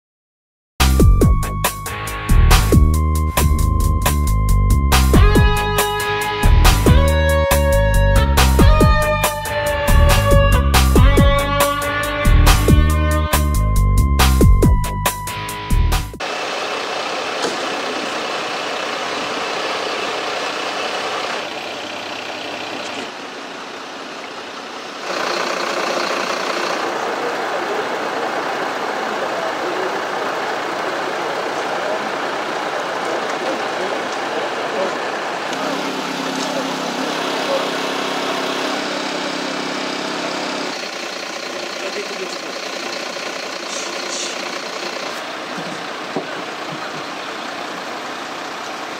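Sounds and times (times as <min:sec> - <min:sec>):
diesel engines idling: 0:01.0 - 0:48.9.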